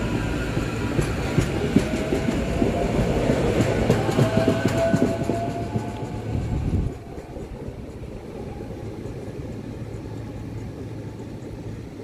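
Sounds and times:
electric railcar hum and whine: 0:00.0 - 0:12.0
train wheels clicking over rail joints: 0:00.0 - 0:12.0.

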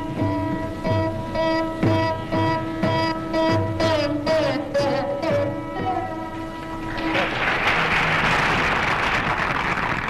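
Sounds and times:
veena note ringing: 0:00.0 - 0:07.0
audience applause: 0:06.9 - 0:10.0.

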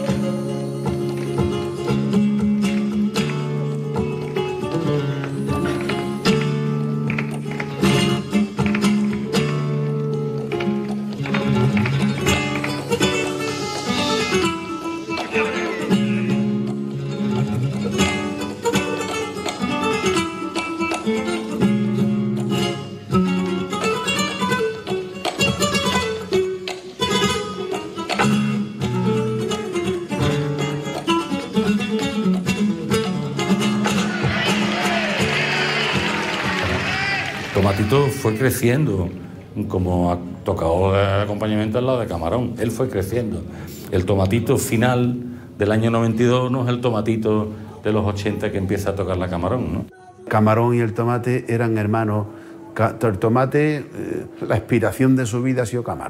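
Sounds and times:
wavering voice singing: 0:00.0 - 0:02.2
flamenco guitar playing: 0:00.0 - 0:56.0.

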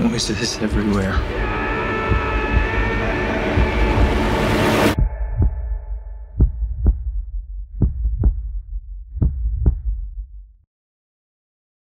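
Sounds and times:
low steady drone: 0:00.0 - 0:07.4
heartbeat thumps: 0:00.0 - 0:10.6.

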